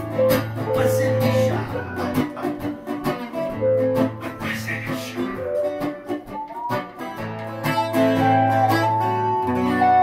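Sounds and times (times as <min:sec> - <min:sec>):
acoustic guitar: 0:00.0 - 0:10.0
electric guitar: 0:00.0 - 0:10.0.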